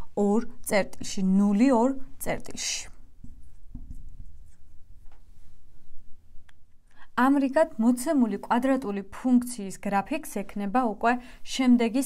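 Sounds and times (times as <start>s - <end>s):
chalk scratching on blackboard: 3.2s - 4.8s.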